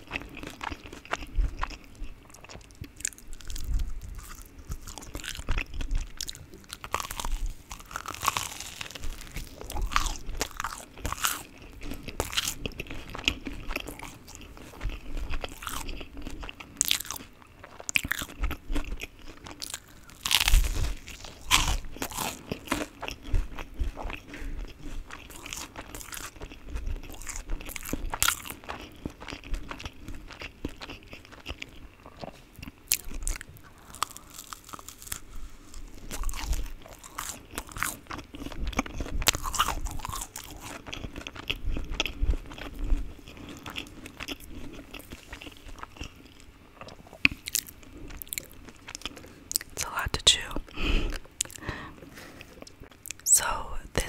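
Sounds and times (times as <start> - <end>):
chewing and biting: 0.0 - 53.3.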